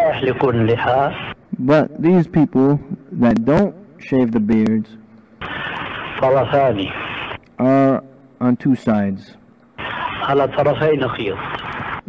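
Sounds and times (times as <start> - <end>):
man speaking: 0.0 - 5.0, 6.2 - 7.0, 7.6 - 9.4, 10.2 - 11.4
recording hiss: 0.0 - 12.0.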